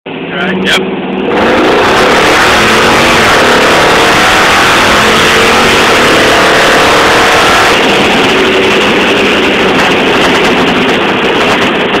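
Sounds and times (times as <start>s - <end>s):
car engine accelerating hard: 0.1s - 12.0s.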